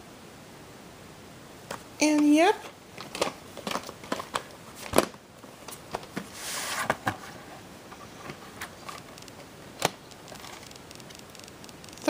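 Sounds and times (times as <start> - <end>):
plastic cassette case clicks and knocks: 3.0 - 6.2.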